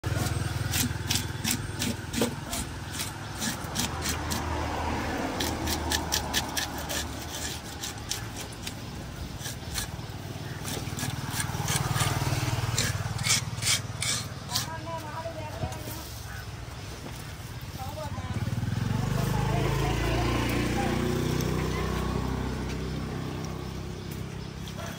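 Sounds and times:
knife scraping fish scales: 0.1s - 4.6s, 5.3s - 14.9s.

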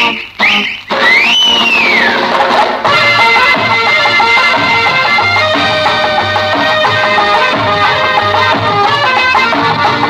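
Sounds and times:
plucked string notes: 0.0s - 10.0s.

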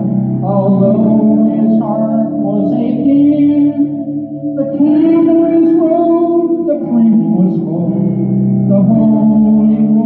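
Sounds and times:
electric guitar chords ringing: 0.0s - 10.0s.

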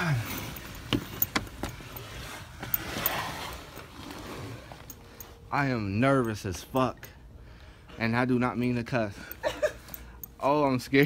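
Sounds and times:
clothing rustling: 0.0s - 5.9s
backpack scraping against stone: 0.1s - 5.4s.

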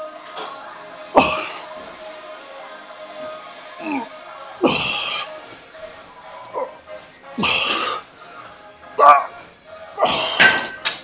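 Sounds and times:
background music: 0.0s - 11.0s
man grunting with effort: 1.2s - 1.7s, 3.8s - 5.2s.

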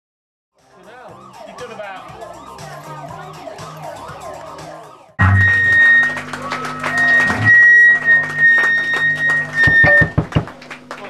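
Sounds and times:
low thumps: 5.2s - 6.1s, 7.2s - 10.6s
live band music: 5.2s - 10.4s.

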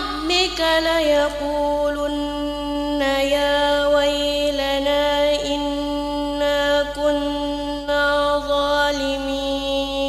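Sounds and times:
person chanting recitation: 0.0s - 10.0s.

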